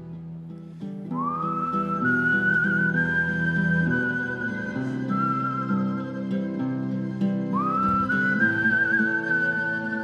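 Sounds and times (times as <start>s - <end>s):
nylon-string guitar: 0.0s - 10.0s
man whistling a long note: 1.1s - 10.0s.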